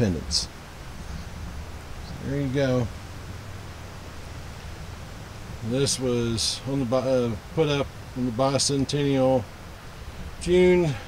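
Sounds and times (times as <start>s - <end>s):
faint even hiss: 0.0s - 11.0s.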